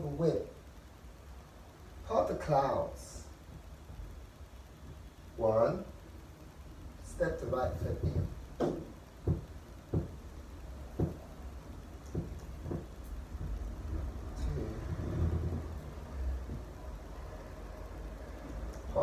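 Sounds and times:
steady low rumble: 0.0s - 19.0s
soft knocks of movement: 7.2s - 17.2s.

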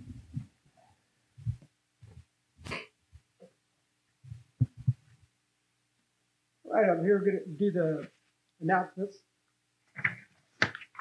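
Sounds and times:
soft thumps and knocks: 4.2s - 5.2s.

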